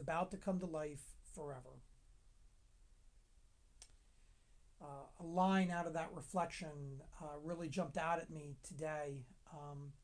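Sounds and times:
faint click: 3.8s - 4.0s.

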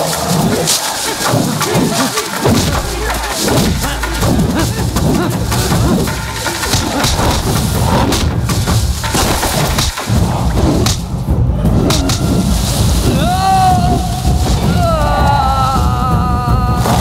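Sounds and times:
rumbling action music score: 0.0s - 17.0s
sharp hits and thuds: 0.4s - 17.0s.

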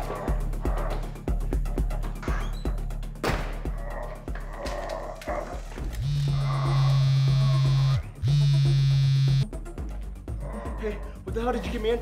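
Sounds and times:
faint background music: 0.0s - 12.0s
mobile phone buzzing: 6.0s - 9.4s.

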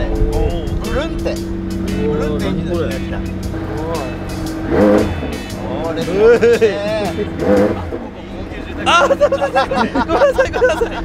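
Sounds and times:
people talking: 0.0s - 4.4s, 5.2s - 11.0s
car engine idling: 0.0s - 11.0s
people laughing: 5.6s - 11.0s.

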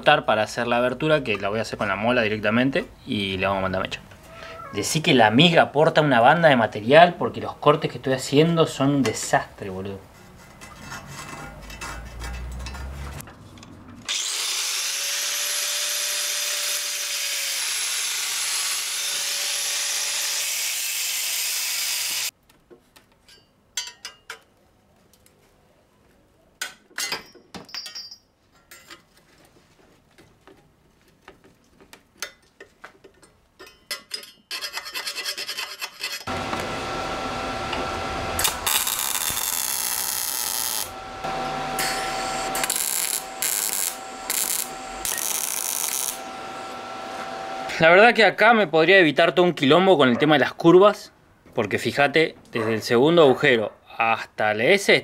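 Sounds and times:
angle grinder cutting metal: 14.1s - 22.3s, 35.3s - 47.9s
metal parts clinking: 27.0s - 29.1s
welder crackling: 36.2s - 47.5s.

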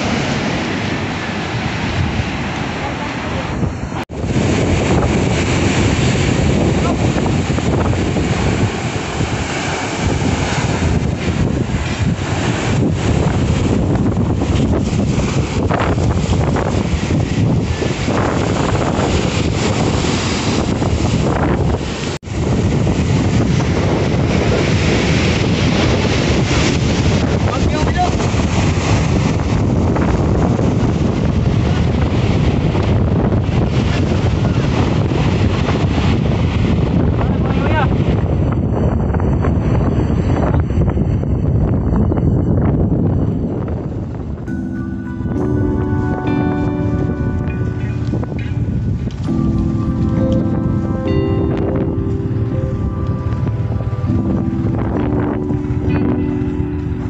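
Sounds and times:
surf breaking on beach: 0.0s - 41.4s
wind buffeting microphone: 0.0s - 57.0s.

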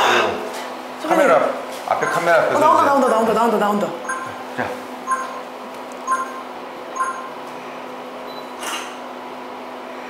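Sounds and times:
low electrical hum: 0.0s - 10.0s
short electronic beeps: 2.0s - 3.2s, 4.0s - 4.4s, 5.0s - 7.4s.

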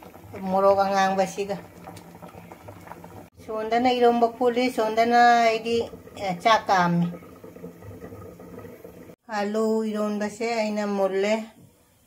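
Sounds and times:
pot heating on gas burner: 0.0s - 12.0s.

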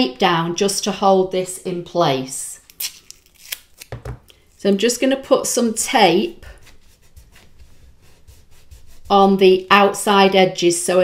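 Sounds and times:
fingertips rubbing tape on vinyl: 6.0s - 9.7s.

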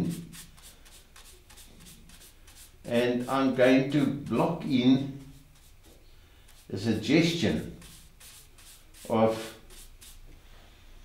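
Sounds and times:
paintbrush scrubbing strokes: 0.0s - 10.4s.

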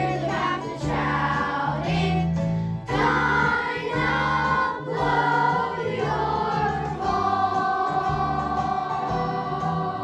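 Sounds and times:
children's choir singing: 0.0s - 10.0s
musical accompaniment: 0.0s - 10.0s.

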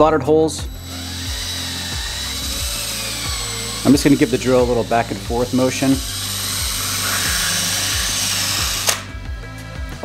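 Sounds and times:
cordless drill boring through plastic: 0.6s - 9.9s.

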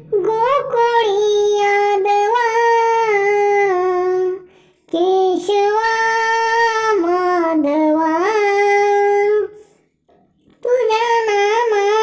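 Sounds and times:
child singing a prayer: 0.0s - 9.8s, 10.6s - 12.0s.

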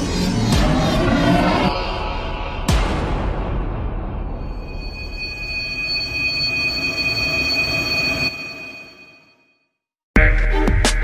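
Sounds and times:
dark background music: 0.0s - 8.4s.

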